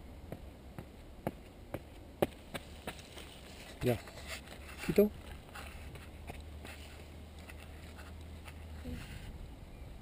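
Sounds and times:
low steady rumble: 0.0 - 3.7
footsteps on dirt path: 0.3 - 9.2.

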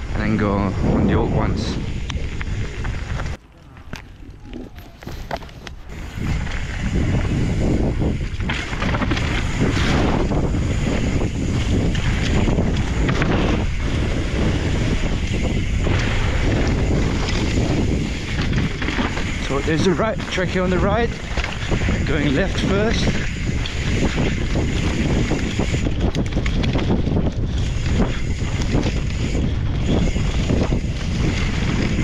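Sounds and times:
bike rattling over bumps: 0.0 - 32.0
wind buffeting microphone: 0.0 - 32.0
tyres rolling over dirt: 1.9 - 32.0.

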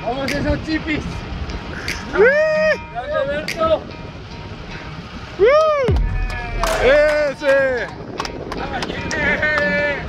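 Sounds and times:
men whooping shouts: 2.1 - 3.2, 5.4 - 7.8.

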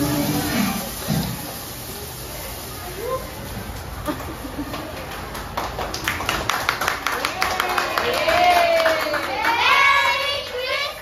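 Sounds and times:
hand clapping: 4.2 - 9.8.

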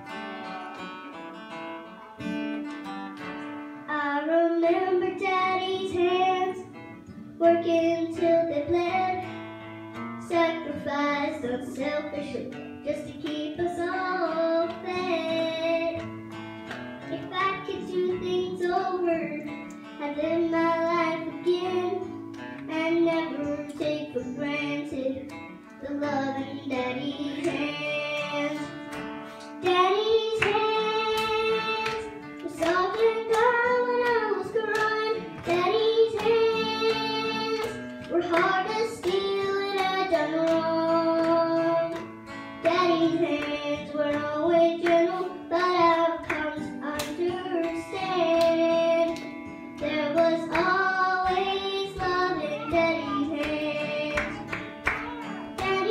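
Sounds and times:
acoustic guitar: 0.0 - 55.9
girl singing a gospel song: 3.8 - 16.3, 17.0 - 55.9.

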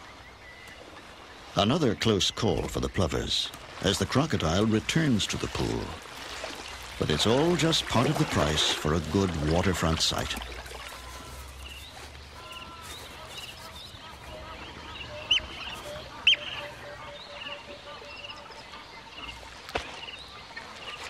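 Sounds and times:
wild birds calling: 0.0 - 21.0.

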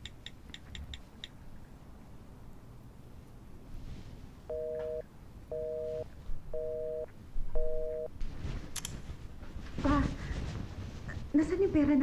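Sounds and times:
telephone busy signal: 4.5 - 8.1.

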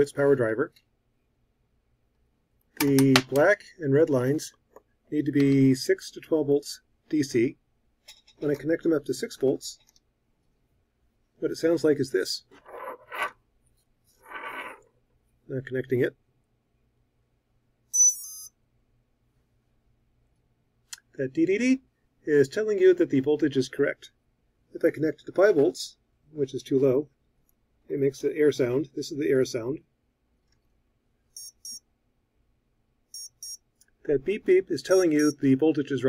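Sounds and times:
high beeps from motor: 18.0 - 18.5, 31.4 - 31.8, 33.2 - 33.6.

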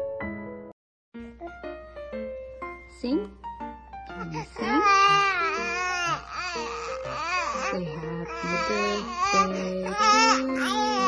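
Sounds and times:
background music with held notes: 0.0 - 11.0
baby crying: 4.2 - 11.0.

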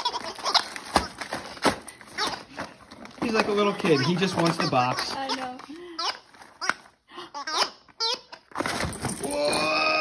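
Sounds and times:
toy giggle sounds: 3.6 - 8.5.

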